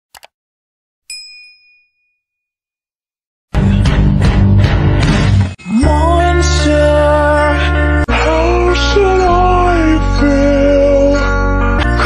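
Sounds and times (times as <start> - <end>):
bright bell ding: 1.1 - 2.4.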